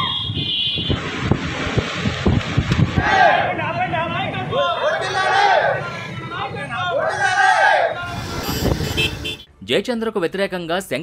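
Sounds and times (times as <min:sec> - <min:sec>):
motorcycle engines: 0:00.0 - 0:09.5
wind buffeting microphone: 0:00.8 - 0:03.6.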